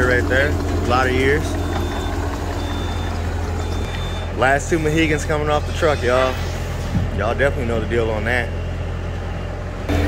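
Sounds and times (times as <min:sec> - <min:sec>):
diesel engine running: 0:00.0 - 0:10.0
backup alarm beeping: 0:01.4 - 0:05.1.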